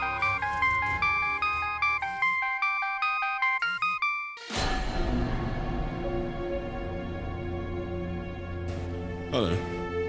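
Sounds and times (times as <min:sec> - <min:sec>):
phone ringtone: 0:00.0 - 0:04.5.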